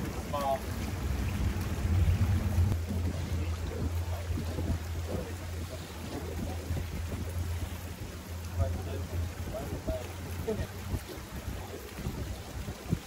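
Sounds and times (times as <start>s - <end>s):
outboard motor droning: 0.0s - 13.0s
water rushing and churning: 0.0s - 13.0s.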